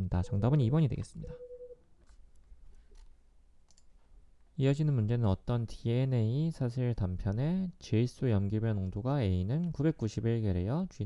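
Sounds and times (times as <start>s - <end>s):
low room noise: 0.0s - 11.0s
computer mouse clicks: 3.7s - 3.9s.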